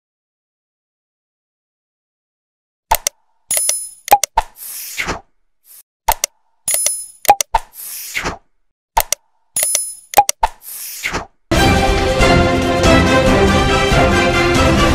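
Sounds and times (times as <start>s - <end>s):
clicks and pops: 2.9s - 8.4s, 9.0s - 11.3s.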